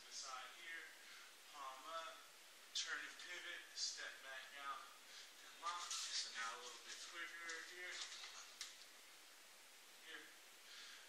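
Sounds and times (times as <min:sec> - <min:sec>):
man speaking quietly: 0:00.0 - 0:08.6, 0:10.0 - 0:10.4.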